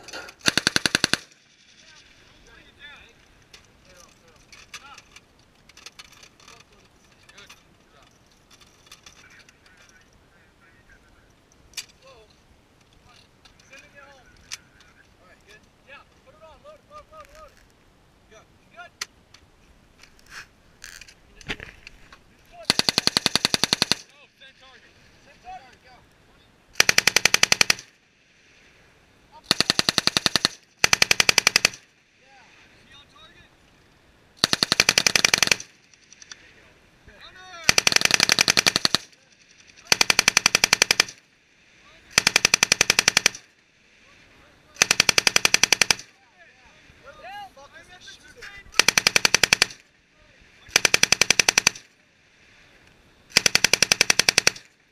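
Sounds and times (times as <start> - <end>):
machine gun bursts: 0.4 - 1.4, 22.6 - 24.1, 26.8 - 27.9, 29.5 - 31.8, 34.4 - 35.8, 37.6 - 39.2, 39.8 - 41.2, 42.1 - 43.5, 44.8 - 46.1, 48.8 - 49.8, 50.7 - 51.9, 53.3 - 54.7.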